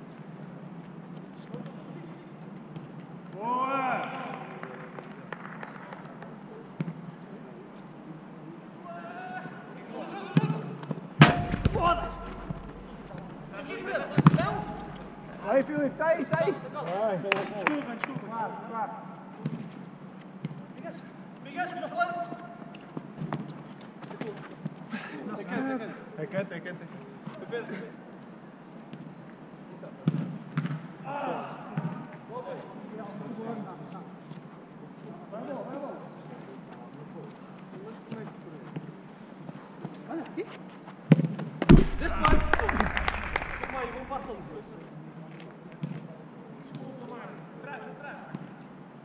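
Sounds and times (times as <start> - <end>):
ball kick thud: 11.2 - 15.2, 41.1 - 44.5
footsteps and ball taps on turf: 36.7 - 43.7.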